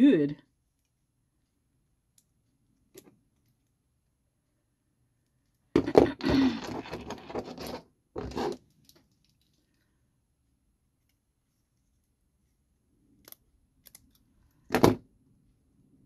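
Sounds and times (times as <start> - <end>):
paper rustling and handling: 6.3 - 8.6.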